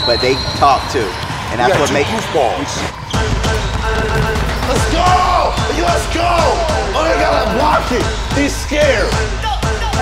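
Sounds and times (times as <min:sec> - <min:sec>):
bass-heavy background music: 0:02.8 - 0:10.0.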